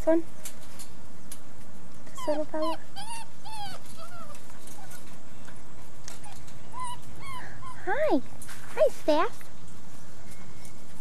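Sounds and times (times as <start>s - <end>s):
puppy whining: 2.0s - 8.3s.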